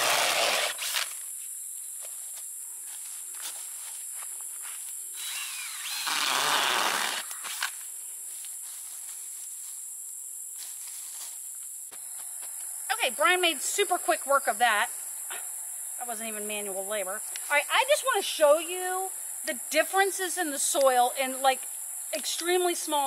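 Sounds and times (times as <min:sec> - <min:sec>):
power drill boring into soil: 0:00.0 - 0:01.1, 0:05.2 - 0:07.7.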